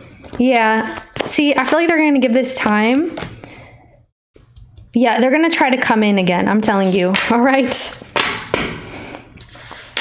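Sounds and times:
cards swishing across table: 0:09.4 - 0:10.0.

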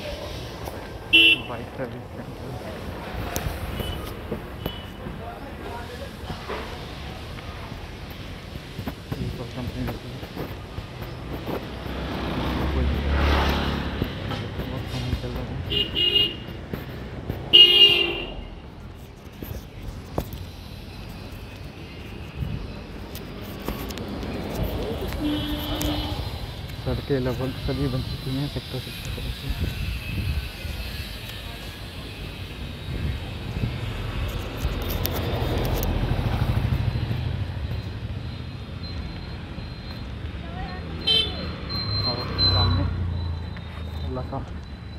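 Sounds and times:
street traffic noise: 0:00.0 - 0:44.9
car horn honking: 0:01.1 - 0:01.6, 0:15.7 - 0:16.5, 0:17.5 - 0:18.5, 0:25.2 - 0:26.4, 0:41.0 - 0:41.5
motor vehicle passing: 0:08.6 - 0:15.6.

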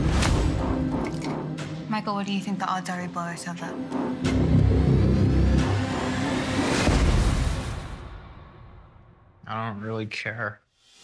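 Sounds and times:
trailer music: 0:00.0 - 0:09.8.

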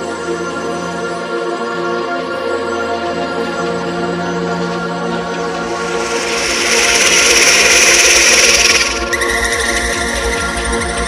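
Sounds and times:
hard psytrance music: 0:02.9 - 0:11.0
rushing white-noise sweep: 0:05.4 - 0:10.4
pulsing bass beat: 0:05.4 - 0:11.0.

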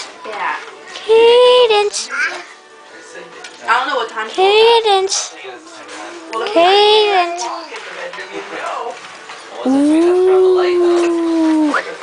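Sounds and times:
dog howling: 0:09.7 - 0:11.8.

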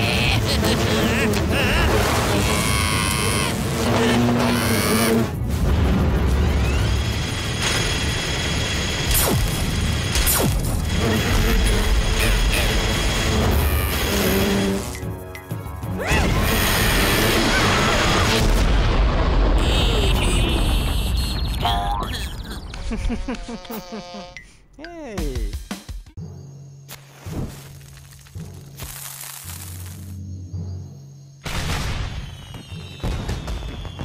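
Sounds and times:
cartoon booms and crashes: 0:16.1 - 0:21.7, 0:31.4 - 0:34.0.

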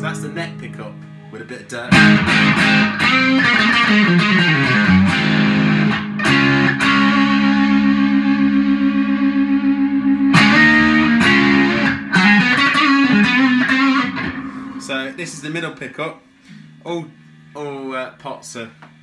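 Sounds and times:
overdriven electric guitar phrase: 0:01.9 - 0:15.8.

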